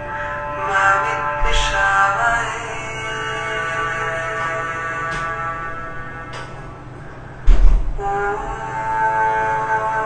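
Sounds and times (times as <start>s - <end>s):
sustained held tones: 0.0s - 7.4s, 8.0s - 10.0s
voice chanting: 0.0s - 10.0s
low thud: 7.4s - 8.0s.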